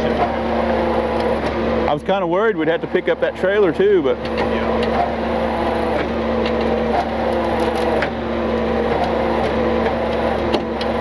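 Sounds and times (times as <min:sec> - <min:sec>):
truck engine running: 0:00.0 - 0:11.0.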